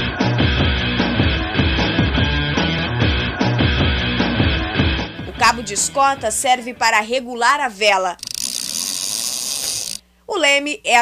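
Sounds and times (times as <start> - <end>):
fast ratchet clicking: 8.2 - 10.0.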